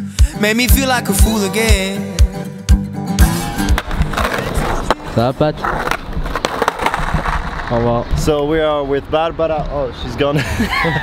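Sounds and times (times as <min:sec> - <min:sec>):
song with steady beat: 0:00.0 - 0:04.2
skateboard wheels rolling on asphalt: 0:03.8 - 0:10.4.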